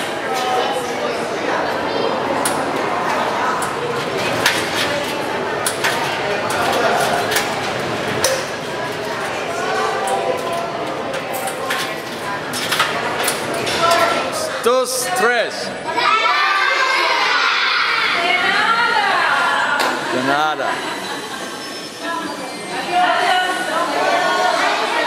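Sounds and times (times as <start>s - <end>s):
adults and children chattering: 0.0s - 25.0s.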